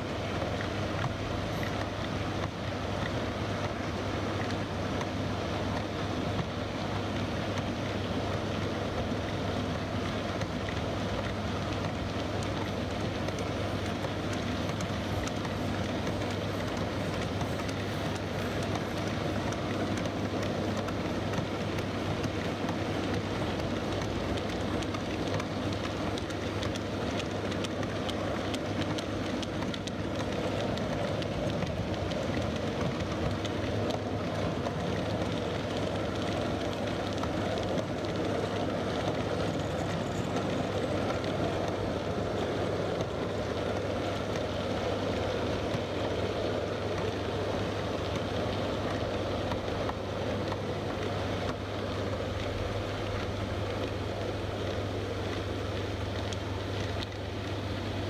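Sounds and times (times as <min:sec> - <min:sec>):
model train wheels clattering: 0:09.2 - 0:57.6.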